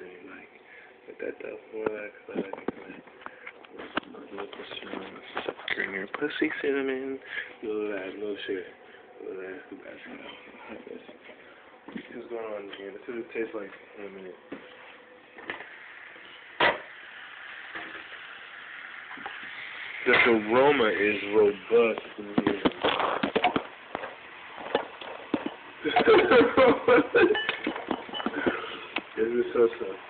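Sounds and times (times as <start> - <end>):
steady hiss: 0.0 - 30.0.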